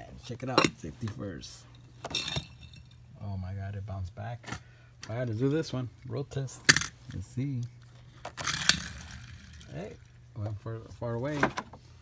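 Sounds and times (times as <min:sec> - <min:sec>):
toy car clattering: 0:08.2 - 0:09.9
toy car rolling on wooden floor: 0:08.3 - 0:09.9.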